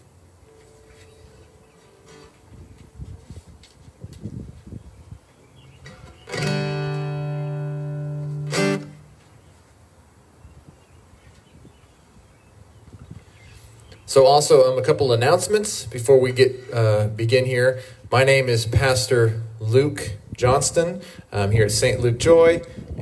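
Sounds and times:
guitar plucks: 5.8 - 9.1
loud held guitar note: 5.9 - 9.1.

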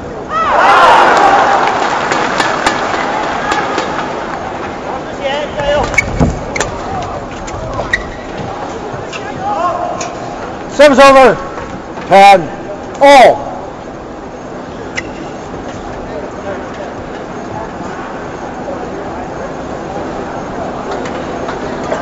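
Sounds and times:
arena crowd: 0.0 - 5.8.

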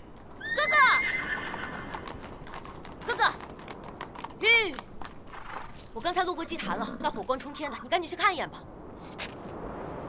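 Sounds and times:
horse whinnying: 0.4 - 2.3.

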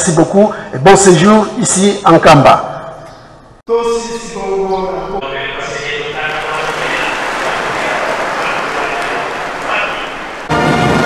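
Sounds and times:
brass music: 5.2 - 11.0
audience applauding: 6.0 - 11.0.

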